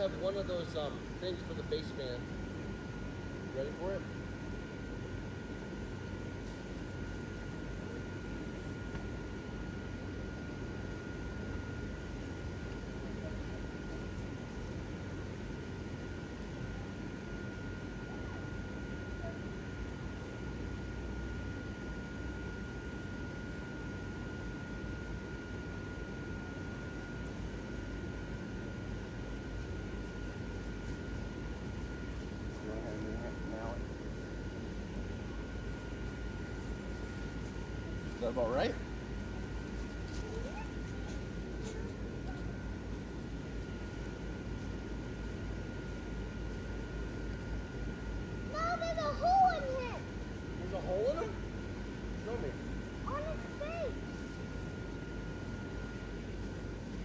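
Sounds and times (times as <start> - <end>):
blower fans whirring: 0.0 - 57.0
thin steady high tone: 0.0 - 57.0.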